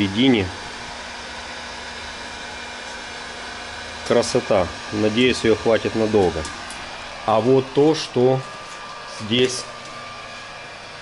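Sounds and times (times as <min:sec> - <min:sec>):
electric blower whooshing: 0:00.0 - 0:11.0.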